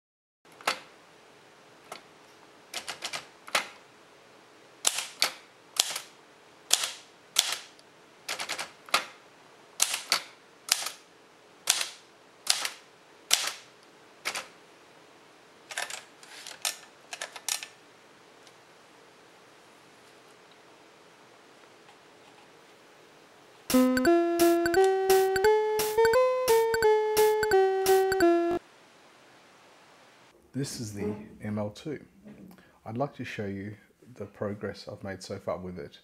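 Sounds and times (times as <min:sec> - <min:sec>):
manual typewriter clacking: 0:02.8 - 0:03.8, 0:08.3 - 0:09.1, 0:09.8 - 0:11.0, 0:11.7 - 0:14.5.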